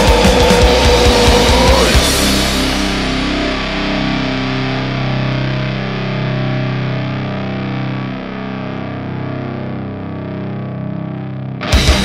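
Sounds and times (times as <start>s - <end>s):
distorted electric guitar chords: 0.0s - 12.0s.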